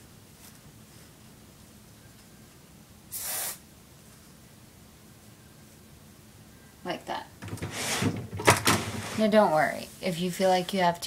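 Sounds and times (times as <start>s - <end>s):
aerosol hairspray spray: 3.1s - 3.6s.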